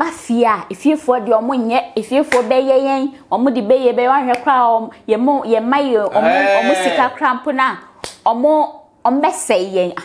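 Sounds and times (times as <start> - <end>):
woman speaking emphatically: 0.0 - 10.0.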